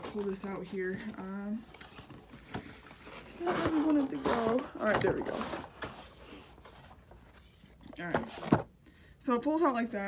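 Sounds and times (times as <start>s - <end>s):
cardboard box scraping and rustling: 2.6s - 8.6s.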